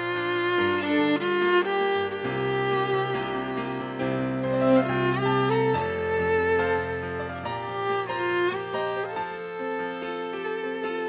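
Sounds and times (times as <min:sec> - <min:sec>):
keyboard accompaniment: 0:00.0 - 0:11.0
violin slow melody: 0:00.0 - 0:11.0.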